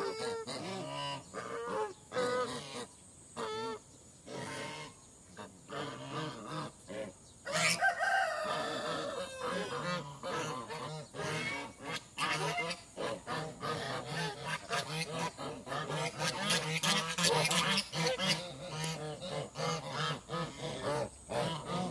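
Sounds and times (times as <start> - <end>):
geese honking: 0.0 - 21.9.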